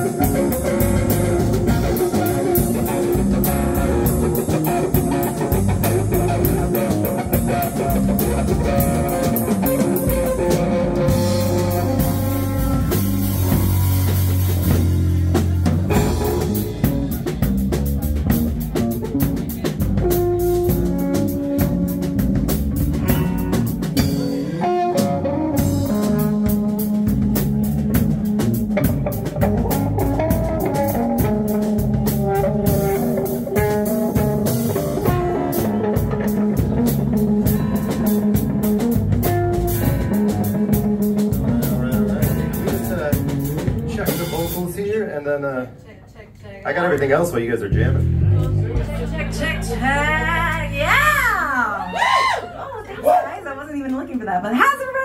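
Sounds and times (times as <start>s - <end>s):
rock band playing: 0.0s - 45.3s, 47.1s - 52.4s.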